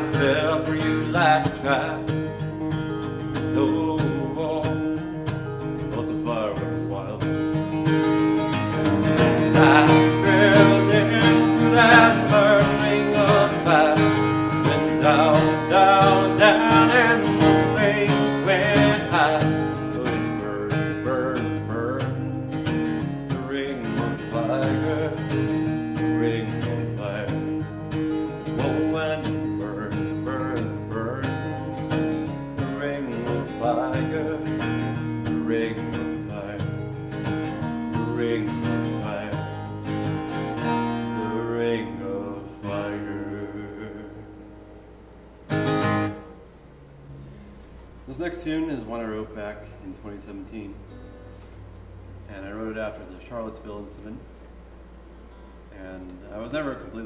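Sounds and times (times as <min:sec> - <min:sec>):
man singing: 0:00.0 - 0:02.3, 0:03.0 - 0:07.5, 0:08.8 - 0:22.7, 0:23.3 - 0:40.4, 0:41.0 - 0:44.4, 0:52.3 - 0:54.1, 0:55.8 - 0:57.0
acoustic guitar strumming chords: 0:00.0 - 0:57.0.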